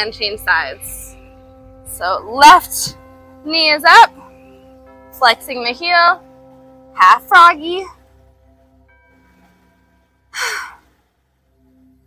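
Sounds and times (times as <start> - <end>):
woman sighing breath: 10.3 - 10.9.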